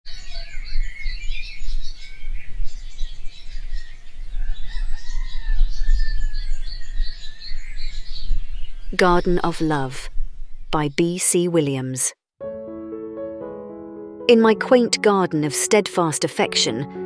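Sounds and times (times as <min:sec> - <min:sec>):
birds chirping and singing: 0:00.1 - 0:09.7.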